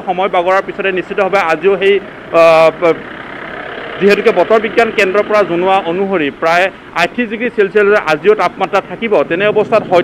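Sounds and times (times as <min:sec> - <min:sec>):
street traffic hum: 0:00.0 - 0:10.0.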